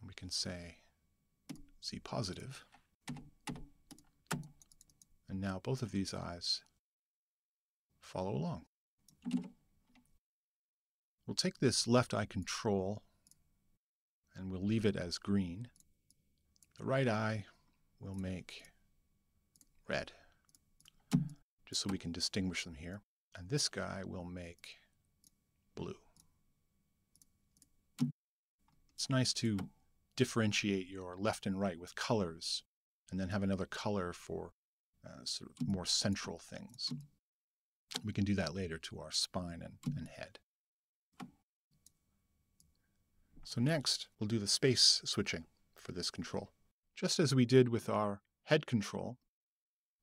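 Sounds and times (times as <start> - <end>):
computer mouse clicks: 3.1 - 5.1, 9.1 - 10.1.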